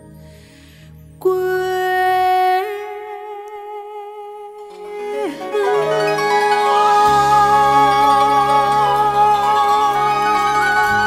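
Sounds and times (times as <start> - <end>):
woman singing a long note: 1.2 - 11.0.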